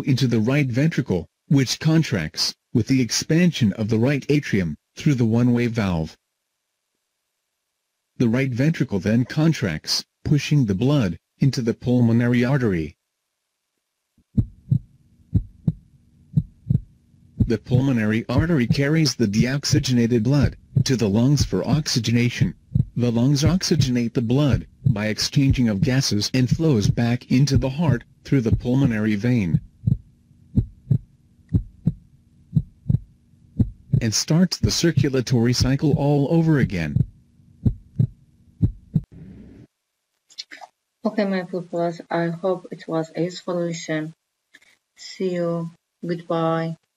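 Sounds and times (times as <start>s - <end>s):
faint low hum: 0.0s - 46.9s
heartbeat: 14.2s - 39.7s.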